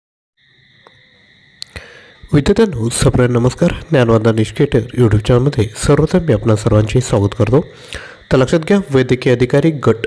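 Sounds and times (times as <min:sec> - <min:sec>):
steady high-pitched tone: 0:00.4 - 0:10.0.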